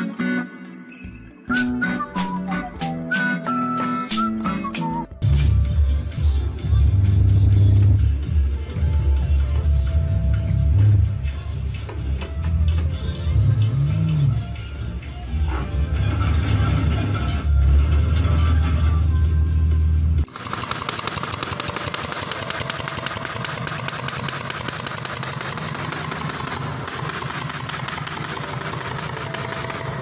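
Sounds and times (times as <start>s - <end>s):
game car engine: 20.2s - 30.0s
power tool rattling: 20.3s - 30.0s
video game music: 27.9s - 30.0s.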